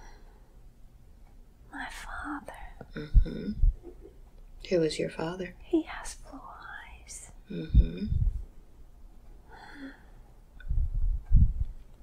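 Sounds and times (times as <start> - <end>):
woman whispering: 1.7 - 3.5, 5.5 - 8.2.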